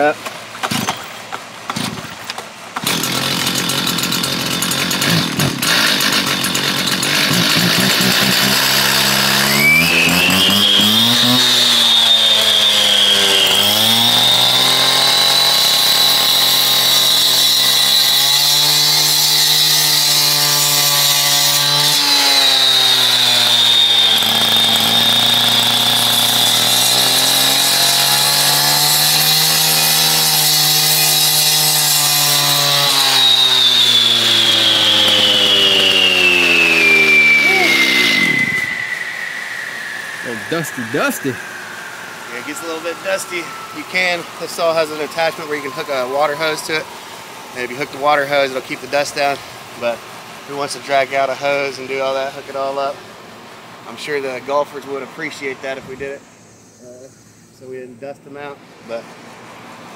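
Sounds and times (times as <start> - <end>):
cut-off saw cutting stone: 2.8 - 46.9.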